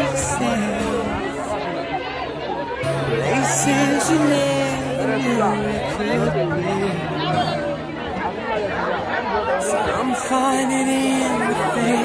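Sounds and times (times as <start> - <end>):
crowd talking: 0.0 - 12.0
faint song playing: 0.0 - 12.0.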